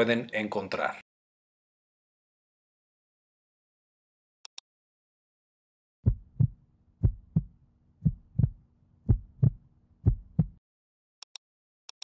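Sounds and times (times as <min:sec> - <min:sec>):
heartbeat thumps: 0:06.0 - 0:10.6.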